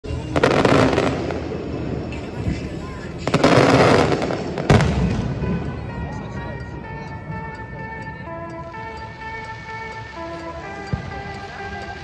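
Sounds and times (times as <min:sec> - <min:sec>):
fireworks crackling and rumble: 0:00.0 - 0:12.0
fireworks bangs: 0:00.1 - 0:06.1.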